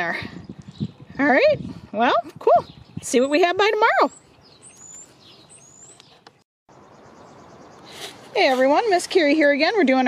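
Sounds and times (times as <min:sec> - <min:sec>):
high rising bird chirps: 0:02.6 - 0:08.5.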